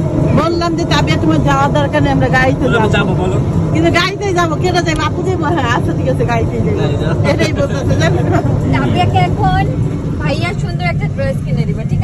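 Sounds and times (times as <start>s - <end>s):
auto-rickshaw engine droning: 0.0s - 12.0s
people talking: 0.3s - 12.0s.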